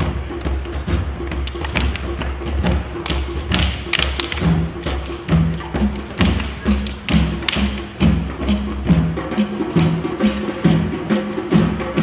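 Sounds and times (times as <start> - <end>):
hand drums playing rhythm: 0.0 - 12.0.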